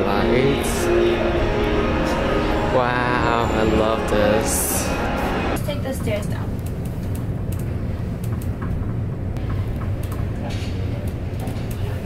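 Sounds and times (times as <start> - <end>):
elevator low rumble: 0.0 - 12.0.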